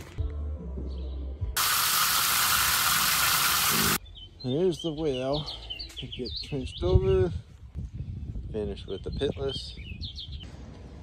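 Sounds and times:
loud steady hiss: 1.6s - 4.0s.

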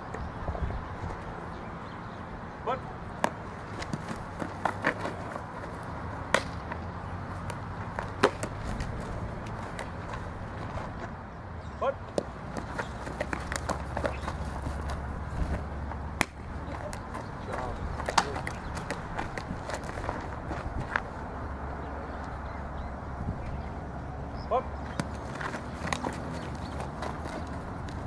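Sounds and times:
low wind rumble: 0.0s - 28.0s
ball smacking into leather glove: 6.3s - 6.8s, 7.4s - 10.2s, 12.1s - 20.2s, 24.9s - 28.0s.

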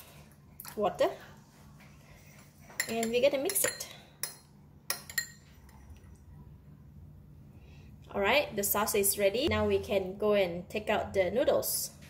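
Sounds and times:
metal spoon clinking glass bowl: 2.8s - 5.8s.

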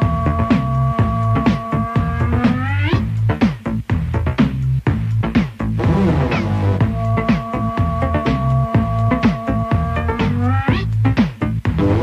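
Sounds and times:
electronic pop song on radio: 0.0s - 12.0s.

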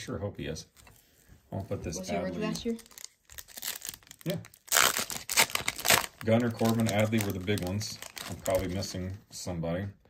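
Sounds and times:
foil wrapper tearing and crinkling: 2.7s - 8.9s.

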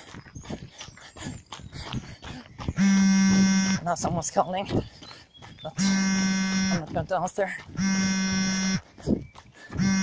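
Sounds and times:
heavy rapid breathing: 0.0s - 2.8s, 4.7s - 5.7s, 8.7s - 10.0s.

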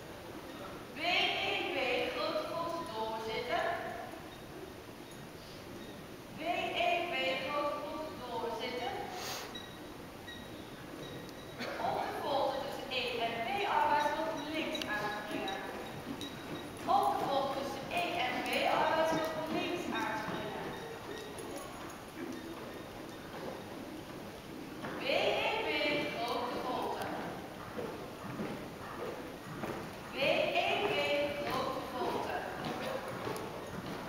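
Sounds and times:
horse hoofbeats on sand: 9.5s - 34.0s.

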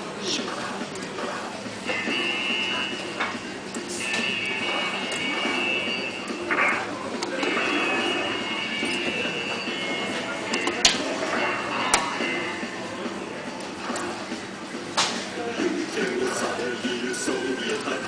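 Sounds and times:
arcade background music: 0.0s - 18.0s
chatter: 0.0s - 18.0s.

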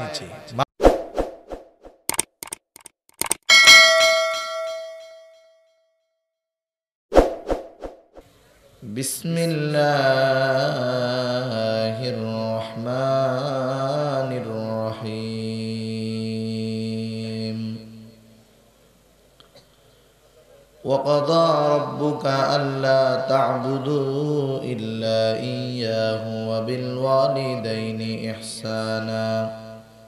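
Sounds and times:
quick clicks: 2.1s - 3.5s
bell chime ringing: 3.5s - 5.7s
man chanting recitation: 8.8s - 18.0s, 20.8s - 29.9s.

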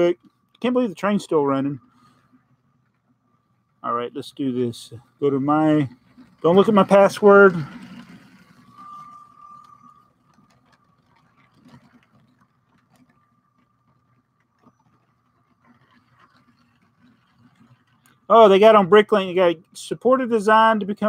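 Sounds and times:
low steady hum: 0.0s - 21.0s
toy train motor whine: 5.2s - 19.5s.

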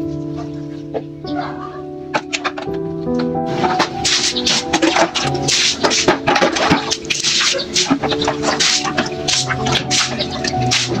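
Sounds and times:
background music with held notes: 0.0s - 11.0s
water pouring and splashing: 3.4s - 11.0s.

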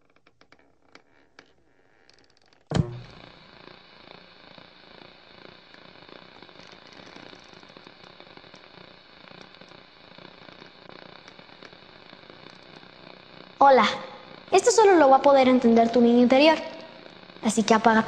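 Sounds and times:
faint scattered ticks: 0.0s - 17.8s
steady crackling hiss: 0.0s - 18.0s
sudden loud hit: 2.7s - 3.2s.

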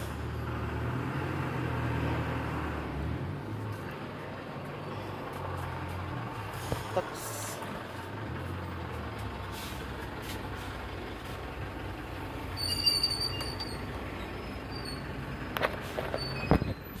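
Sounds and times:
road traffic hum: 0.0s - 17.0s
high-pitched squeal: 12.5s - 15.1s.

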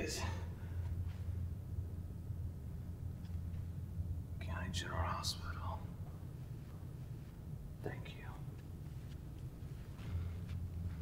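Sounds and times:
low room hum: 0.0s - 11.0s
breathy whisper: 7.8s - 8.6s.

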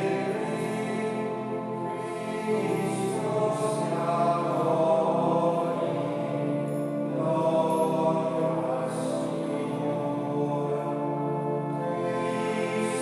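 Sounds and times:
sacred chant in long notes: 0.0s - 13.0s
sustained chords: 0.0s - 13.0s.

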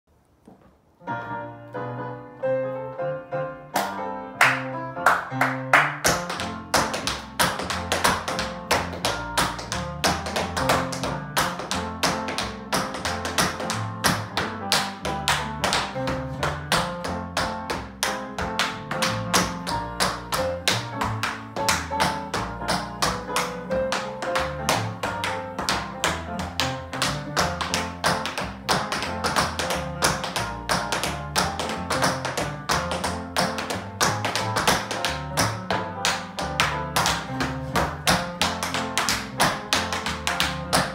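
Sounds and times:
tap shoes on wooden floor: 6.0s - 40.9s.

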